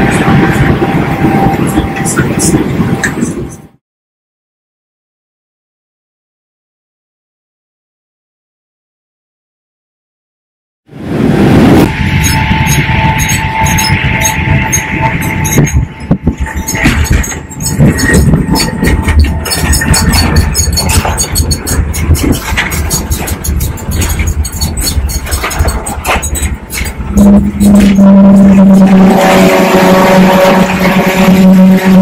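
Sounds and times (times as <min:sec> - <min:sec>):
jet airliner cabin rumble: 0:11.0 - 0:31.9
clicks and knocks: 0:16.5 - 0:28.0.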